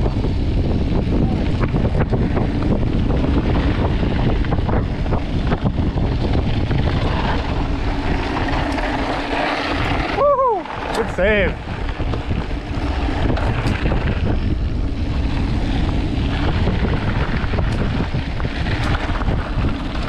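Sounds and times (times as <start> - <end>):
bike tyres rolling on gravel: 0.0 - 20.0
wind buffeting microphone: 0.0 - 20.0.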